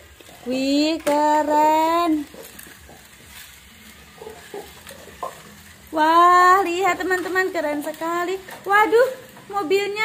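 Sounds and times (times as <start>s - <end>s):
toy cars clicking on plastic track: 0.1s - 6.0s.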